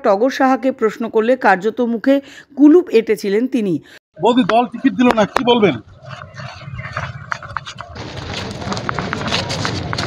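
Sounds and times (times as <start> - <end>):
woman speaking: 0.0 - 3.9.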